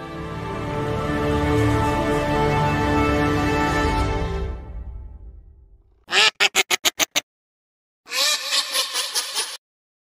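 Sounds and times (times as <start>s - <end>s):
duck quacking: 6.1s - 7.2s, 8.1s - 9.6s.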